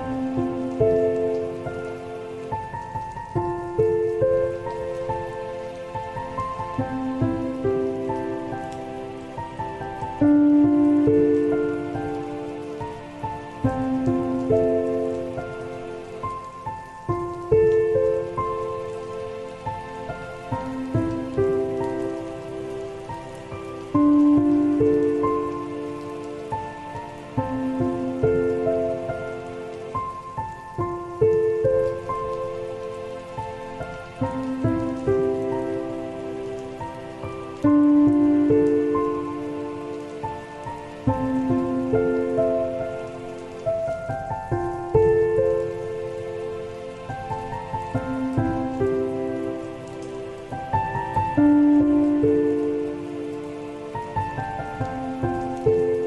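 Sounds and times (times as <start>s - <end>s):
rain patter: 0.0s - 56.0s
soft piano chords: 0.0s - 56.0s.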